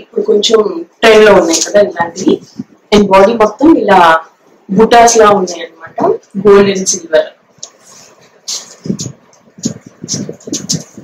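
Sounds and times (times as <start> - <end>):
woman speaking: 0.0 - 7.4.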